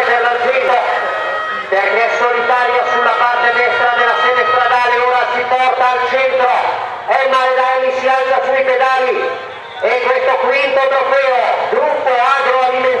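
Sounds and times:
man commentating over loudspeaker: 0:00.0 - 0:13.0.

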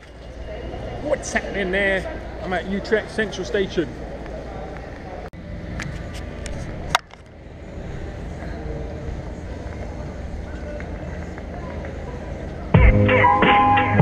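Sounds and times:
faint distant voices: 0:00.0 - 0:12.9
city low rumble: 0:00.0 - 0:14.0.

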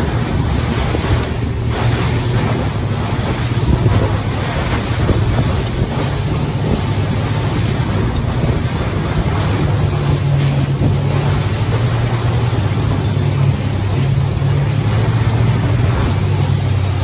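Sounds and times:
low engine drone: 0:00.0 - 0:17.0
water rushing along hull: 0:00.0 - 0:17.0
wind buffeting microphone: 0:00.0 - 0:17.0.

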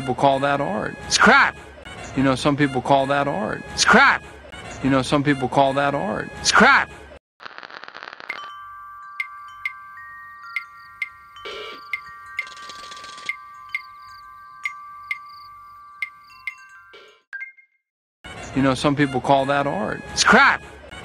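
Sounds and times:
chime-like jingle: 0:08.3 - 0:17.3.

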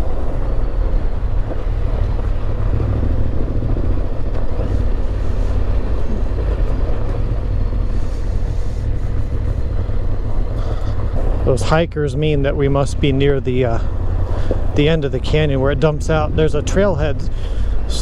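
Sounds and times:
motorcycle engine rumble: 0:00.0 - 0:18.0
road noise hiss: 0:00.0 - 0:18.0.

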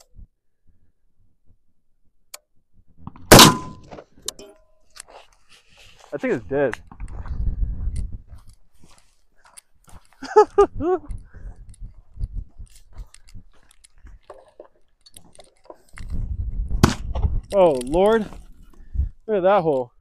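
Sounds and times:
footsteps on rocky dirt: 0:04.9 - 0:19.2
wind buffeting microphone: 0:06.5 - 0:08.6, 0:10.6 - 0:14.2, 0:15.9 - 0:19.2
short laugh: 0:10.2 - 0:11.1.

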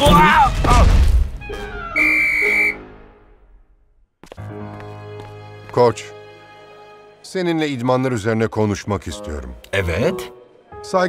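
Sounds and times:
background music: 0:00.0 - 0:11.0
high-pitched whistle blast: 0:01.4 - 0:03.0.

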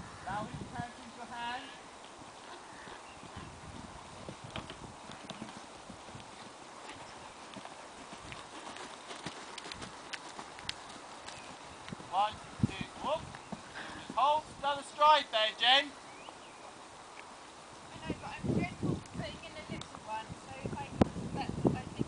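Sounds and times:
pony hoofbeats cantering: 0:02.0 - 0:14.5.

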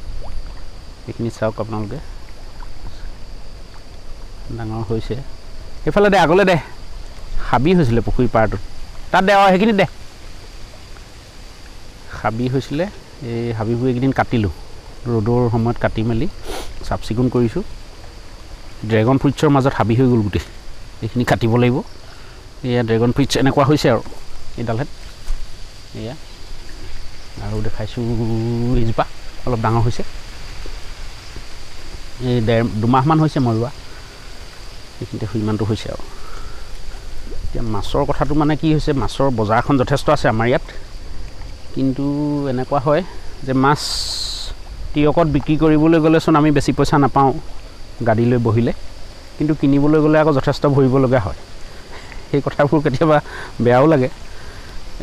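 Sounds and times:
high-pitched insect drone: 0:00.0 - 0:55.0
outdoor background hiss: 0:00.0 - 0:55.0
man speaking: 0:05.9 - 0:06.7, 0:07.4 - 0:09.9, 0:12.1 - 0:17.7, 0:18.8 - 0:21.9, 0:22.6 - 0:24.9, 0:27.4 - 0:30.1, 0:32.2 - 0:33.8, 0:37.5 - 0:40.8, 0:41.8 - 0:47.4, 0:49.4 - 0:51.4, 0:52.3 - 0:54.2.

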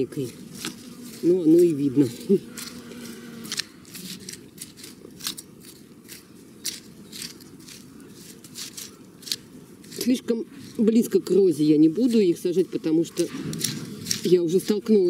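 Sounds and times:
garden tool crunching through soil: 0:00.0 - 0:15.0.

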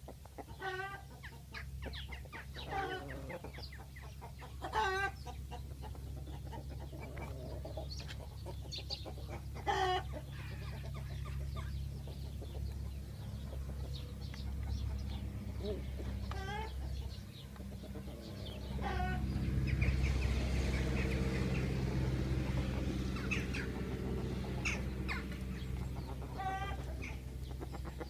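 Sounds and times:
chickens clucking: 0:00.0 - 0:28.0.

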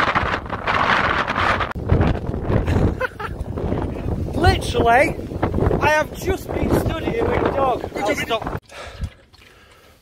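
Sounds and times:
wind buffeting microphone: 0:00.0 - 0:09.2.

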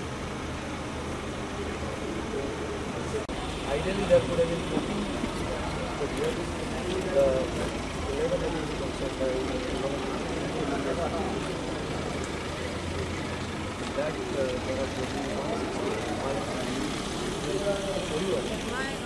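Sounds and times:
vehicle engine idling: 0:00.0 - 0:19.0
indistinct conversation: 0:02.0 - 0:19.0.

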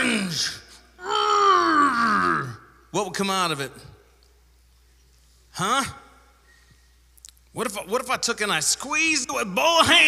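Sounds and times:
man straining groan: 0:01.0 - 0:02.6.

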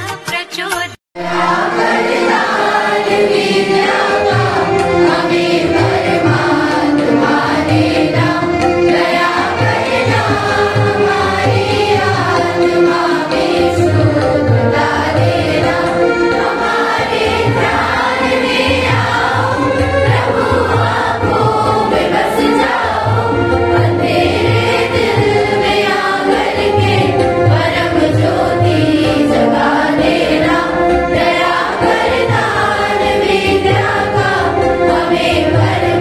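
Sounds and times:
children singing together: 0:01.2 - 0:36.0.

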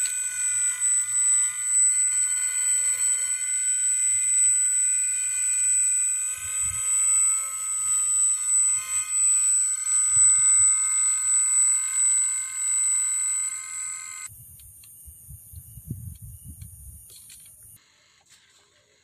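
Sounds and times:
electric motor high whine: 0:00.0 - 0:14.3.

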